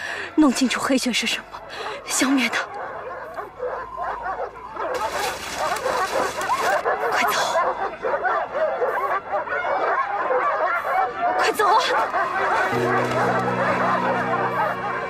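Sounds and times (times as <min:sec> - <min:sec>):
dogs barking and yelping: 0:01.5 - 0:15.0.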